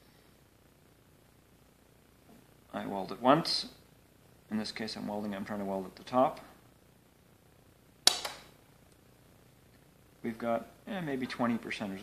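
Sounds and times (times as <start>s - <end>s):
welder arc snap: 8.0s - 9.1s.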